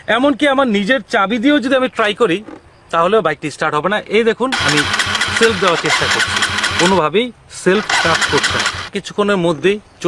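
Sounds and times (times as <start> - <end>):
motorcycle starter cranking: 4.5 - 7.0, 7.8 - 8.9.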